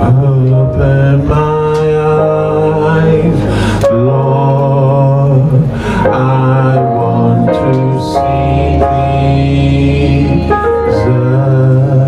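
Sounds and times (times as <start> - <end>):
instrumental backing music: 0.0 - 12.0
man singing gospel song: 0.0 - 12.0.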